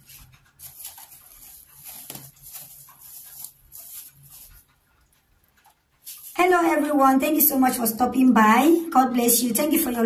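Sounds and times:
plastic wrapping crinkling: 0:00.0 - 0:06.9.

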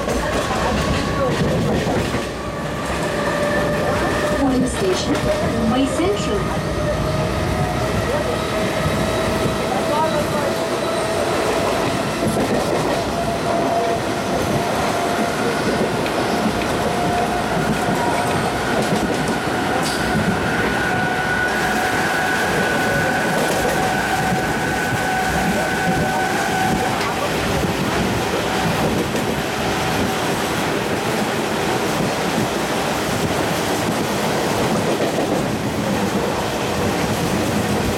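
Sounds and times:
high train whine: 0:00.0 - 0:37.9
train wheels rumbling and rattling: 0:00.0 - 0:37.9.

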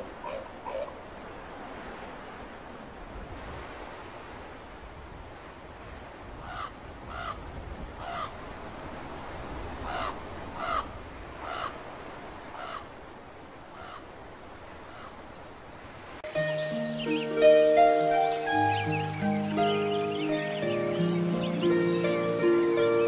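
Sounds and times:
steady background hiss: 0:00.0 - 0:23.0
crow cawing: 0:06.4 - 0:07.4, 0:08.0 - 0:08.4, 0:09.8 - 0:11.8, 0:12.5 - 0:12.9, 0:13.7 - 0:14.1, 0:14.9 - 0:15.2.

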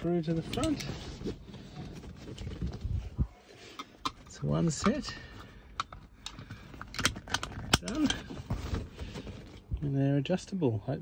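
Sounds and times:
camera handling rumble: 0:00.3 - 0:09.8.

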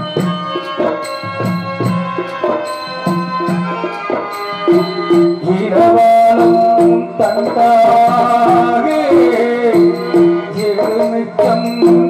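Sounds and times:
tabla and drum strokes: 0:00.0 - 0:12.0.

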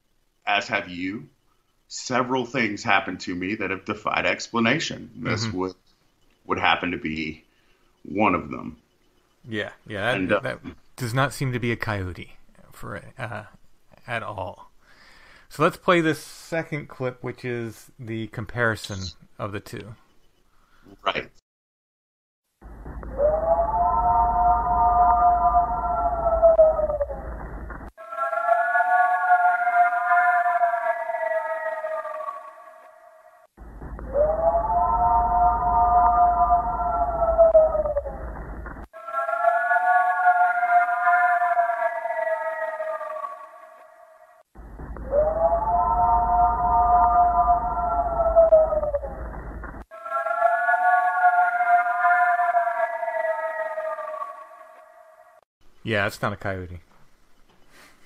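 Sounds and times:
low hum: 0:22.6 - 0:27.9, 0:33.6 - 0:38.9, 0:44.6 - 0:50.4
long animal-like howl: 0:23.0 - 0:27.4, 0:28.0 - 0:55.4.

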